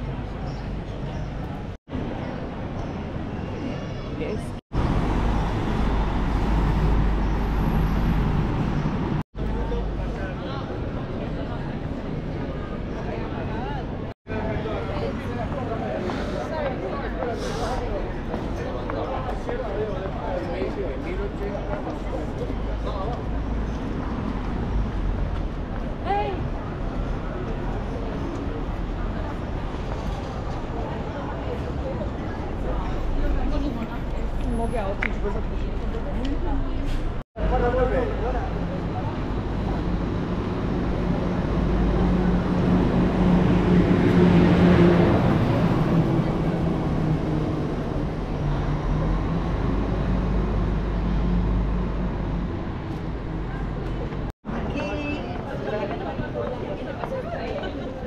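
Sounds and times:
vehicle rumble and road noise: 0:04.1 - 0:56.5
people talking: 0:09.4 - 0:23.3, 0:25.8 - 0:40.1, 0:53.4 - 0:58.0.

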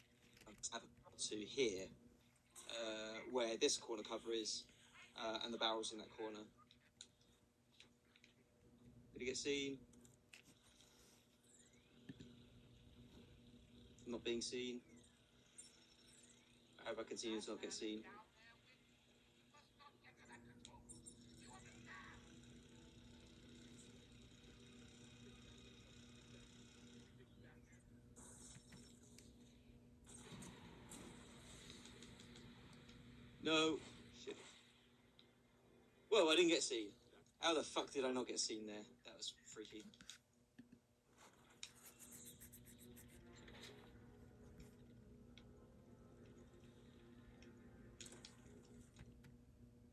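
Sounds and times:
faint steady hum: 0:00.0 - 0:49.9.

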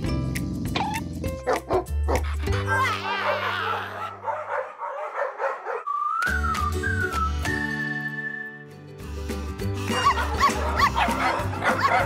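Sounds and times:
cartoon soundtrack music: 0:00.0 - 0:04.3, 0:06.3 - 0:12.0
high dog-like yapping cries: 0:01.5 - 0:05.9, 0:09.9 - 0:12.0.

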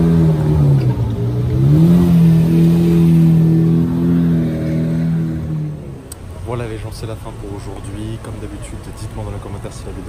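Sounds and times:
car engine pulling away: 0:00.0 - 0:06.6.

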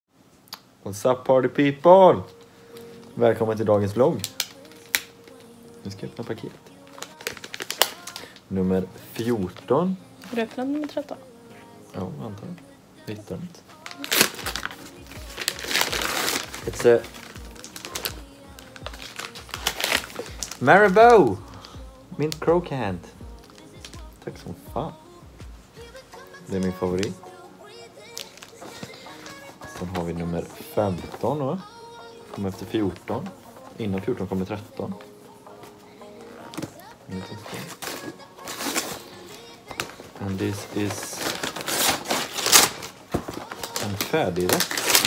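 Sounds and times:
background music: 0:00.5 - 0:45.0
wrapping paper tearing and crinkling: 0:04.2 - 0:08.4, 0:13.7 - 0:22.4, 0:23.4 - 0:24.1, 0:28.0 - 0:31.4, 0:36.4 - 0:45.0.

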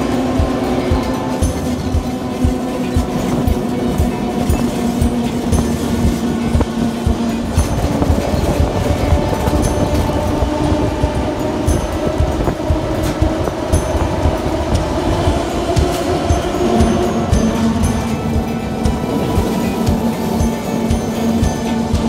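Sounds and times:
background music sustained notes: 0:00.0 - 0:22.0
train rumbling on rails: 0:00.0 - 0:22.0.

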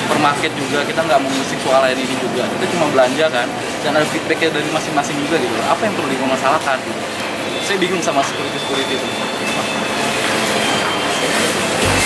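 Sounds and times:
shopping cart rolling on tiles: 0:00.0 - 0:12.0.

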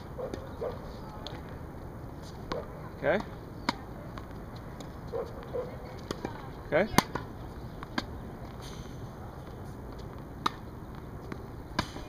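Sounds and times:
tennis ball pops on hard court: 0:11.3 - 0:12.0.

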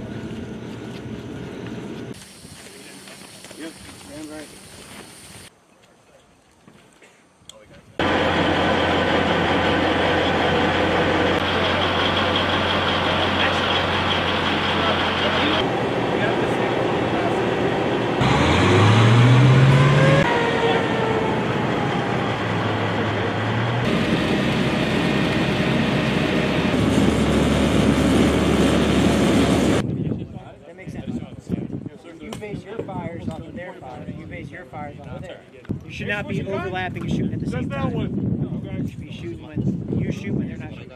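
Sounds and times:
heavy vehicle engine running: 0:08.0 - 0:29.8.

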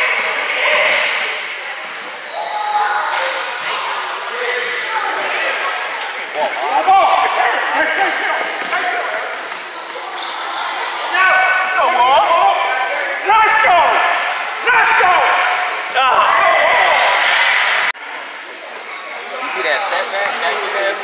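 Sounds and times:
people shouting: 0:11.1 - 0:17.9.

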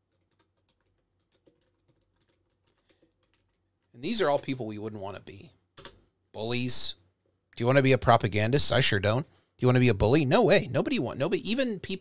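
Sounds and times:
faint keyboard typing: 0:00.0 - 0:05.0, 0:05.7 - 0:06.1.

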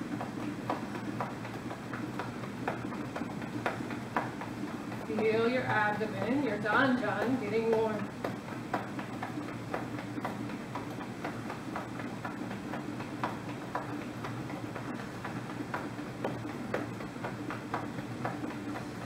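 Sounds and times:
hands tapping on belly: 0:00.0 - 0:05.3, 0:07.0 - 0:19.0.

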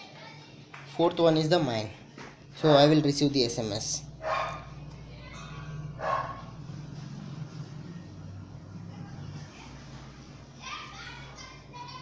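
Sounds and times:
steady low hum: 0:00.0 - 0:12.0
dog barking: 0:04.2 - 0:04.8, 0:06.0 - 0:06.6.

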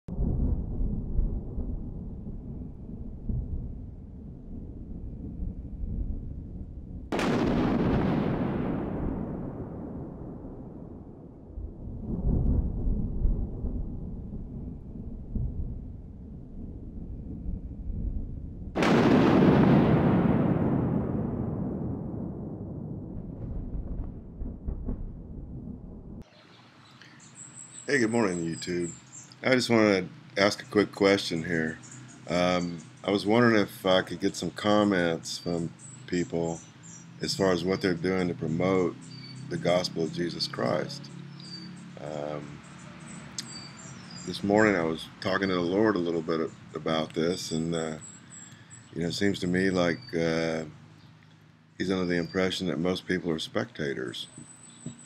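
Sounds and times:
loud boom: 0:00.1 - 0:26.3
low rumble: 0:00.1 - 0:26.3
man speaking: 0:27.9 - 0:36.6, 0:37.2 - 0:41.1, 0:42.0 - 0:42.6, 0:44.3 - 0:48.0, 0:49.0 - 0:50.7, 0:51.8 - 0:54.3.

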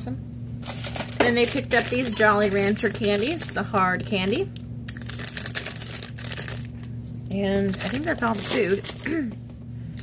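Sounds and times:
plastic candy bag crinkling: 0:00.6 - 0:09.3.

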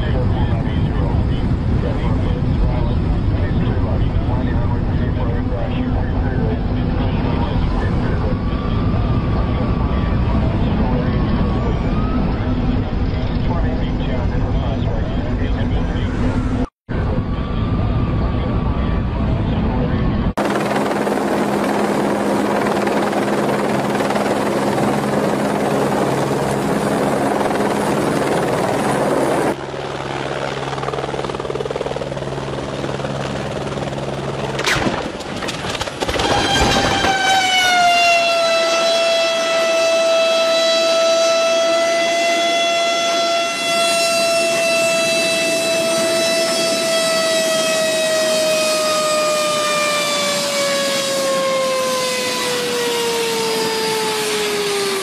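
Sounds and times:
helicopter rotor and engine: 0:00.0 - 0:55.0
turbine whining down: 0:15.3 - 0:55.0
helicopter crashing: 0:20.4 - 0:40.5, 0:42.0 - 0:55.0.

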